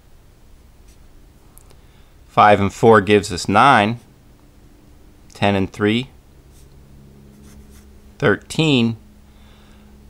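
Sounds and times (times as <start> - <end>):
marker scratching on paper: 6.5 - 7.9.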